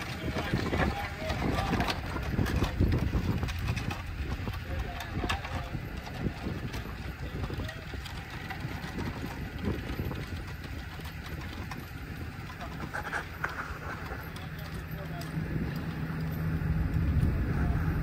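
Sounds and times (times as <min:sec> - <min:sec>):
faint voices: 0:00.0 - 0:18.0
wind buffeting microphone: 0:00.0 - 0:18.0.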